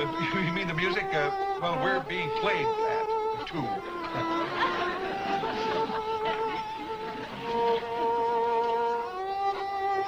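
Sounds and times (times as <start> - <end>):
solo violin melody: 0.0 - 10.0.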